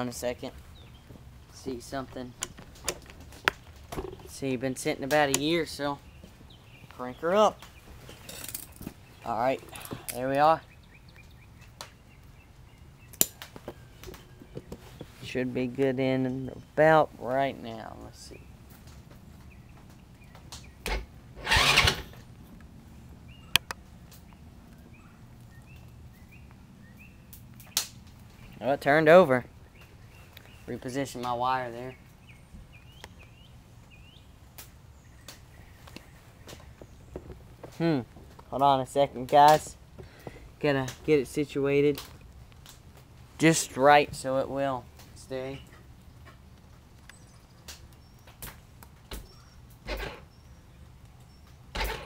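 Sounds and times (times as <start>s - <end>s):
bird chirping: 0.0s - 22.2s, 23.0s - 40.3s, 47.0s - 52.0s
sharp click: 23.5s - 23.8s.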